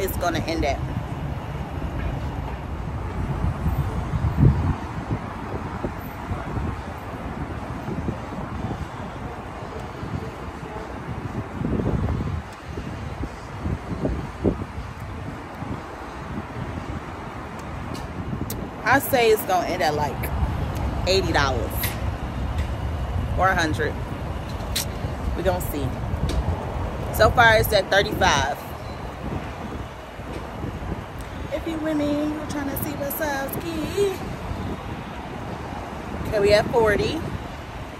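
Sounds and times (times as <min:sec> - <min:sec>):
street traffic rumble: 0:00.0 - 0:37.9
wind buffeting microphone: 0:00.0 - 0:37.9.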